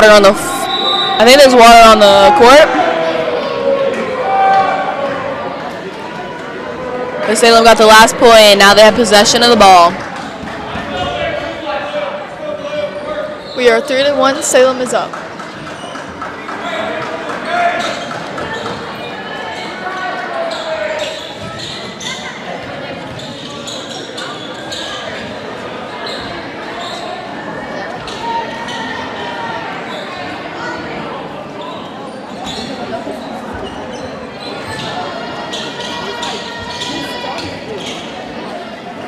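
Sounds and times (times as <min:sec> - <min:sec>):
spectators chattering: 0:00.0 - 0:39.0.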